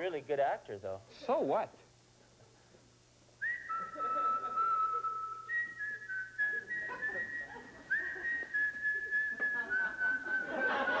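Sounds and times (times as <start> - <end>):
person whistling a slow tune: 3.4 - 11.0.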